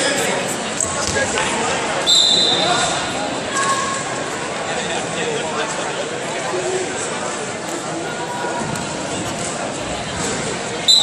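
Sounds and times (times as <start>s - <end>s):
voices in a sports hall: 0.0s - 11.0s
referee's whistle: 2.0s - 2.7s.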